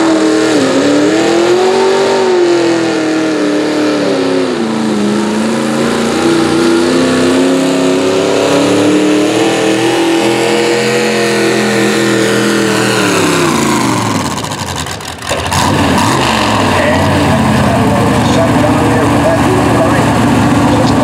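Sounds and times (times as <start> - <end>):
tractor engine revving hard: 0.0 - 21.0.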